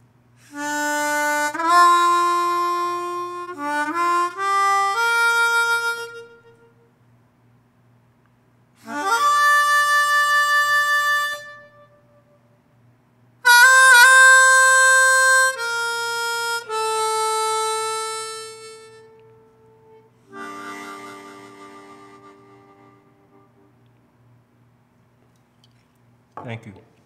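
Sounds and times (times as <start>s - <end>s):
harmonica holding a note: 0.4s - 7.0s, 8.8s - 12.5s, 13.4s - 23.8s.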